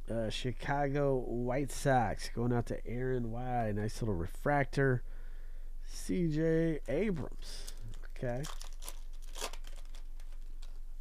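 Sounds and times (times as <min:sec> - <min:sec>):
low steady hum: 0:00.0 - 0:11.0
faint rustles and clicks: 0:06.9 - 0:11.0
foil wrapper tearing: 0:07.6 - 0:10.8.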